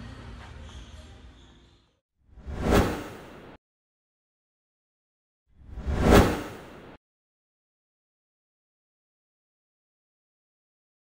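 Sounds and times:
whoosh sound effect: 2.4s - 3.6s, 5.7s - 7.0s.

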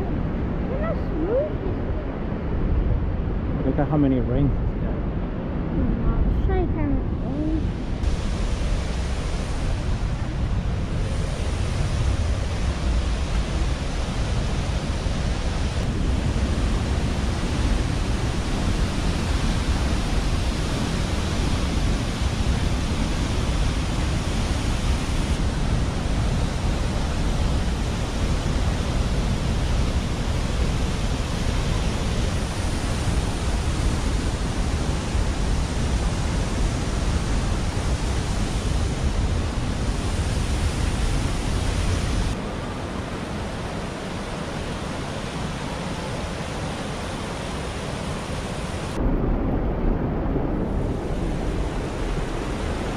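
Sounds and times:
waterfall roaring: 0.0s - 2.6s, 5.2s - 52.9s.

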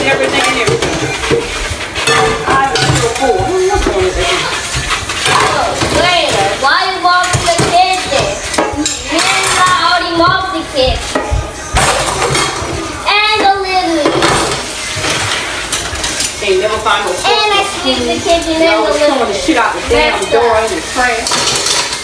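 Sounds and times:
dishes clinking in a sink: 0.0s - 6.6s, 11.1s - 16.4s, 19.9s - 22.0s
voices talking: 0.0s - 21.4s.

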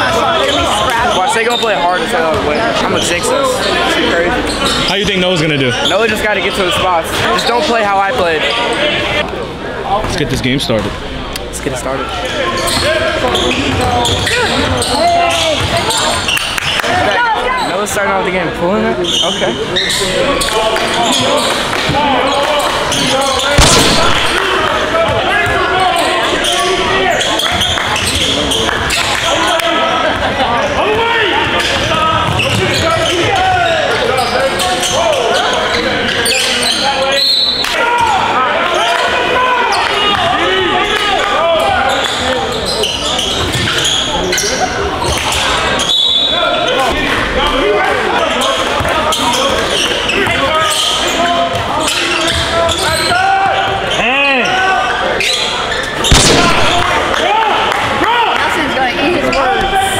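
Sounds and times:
echoing voices: 56.1s - 59.9s.

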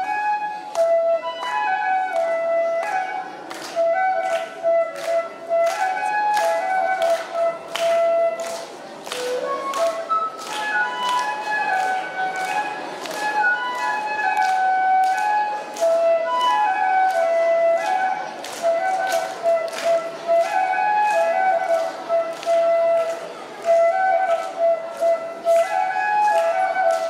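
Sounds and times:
bamboo flute melody: 0.0s - 27.0s.

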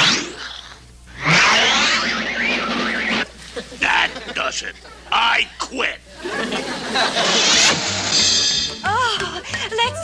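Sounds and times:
falling whistle glide: 1.2s - 3.3s
loud warbling whoosh: 1.2s - 3.3s, 7.2s - 8.6s.

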